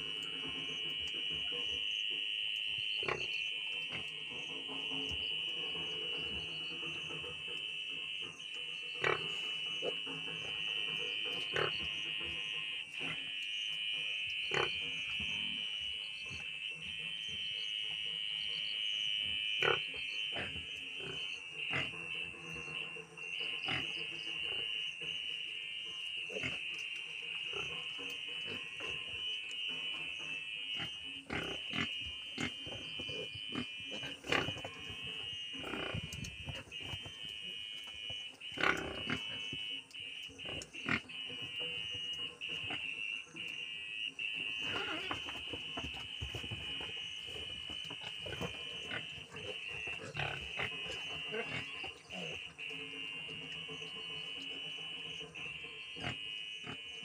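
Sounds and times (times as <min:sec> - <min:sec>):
pigs grunting and squealing: 0:19.6 - 0:24.7, 0:30.8 - 0:36.9, 0:38.5 - 0:39.5, 0:44.6 - 0:45.4, 0:47.3 - 0:54.4.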